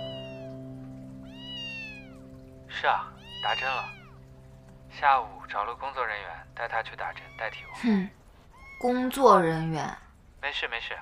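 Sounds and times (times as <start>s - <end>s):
kitten mewing: 3.2s - 4.2s, 7.1s - 9.0s.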